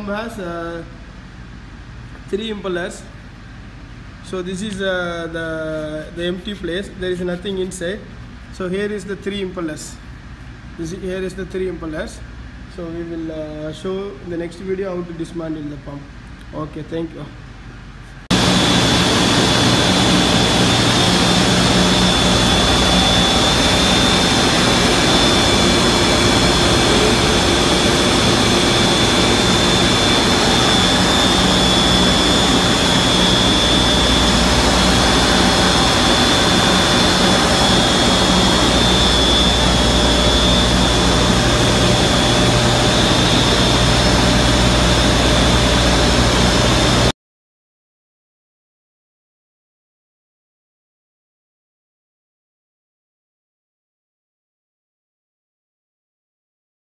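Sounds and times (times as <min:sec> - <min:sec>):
machinery whining and humming: 0:18.3 - 0:47.1.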